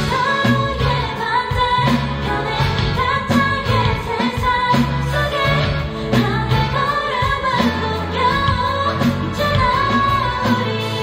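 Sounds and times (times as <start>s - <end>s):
bass guitar: 0.0s - 11.0s
drum kit: 0.0s - 11.0s
female vocal singing: 0.0s - 11.0s.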